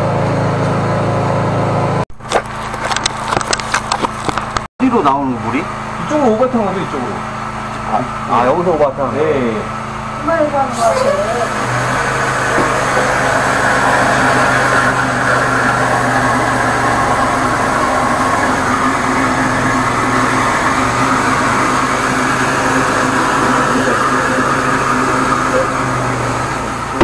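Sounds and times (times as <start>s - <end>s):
drain jetter humming: 5.4s - 27.0s.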